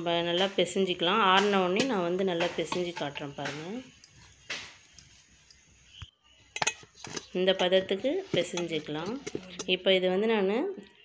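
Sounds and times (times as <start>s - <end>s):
wooden rod pounding in steel bowl: 0.2s - 4.9s, 6.6s - 9.8s.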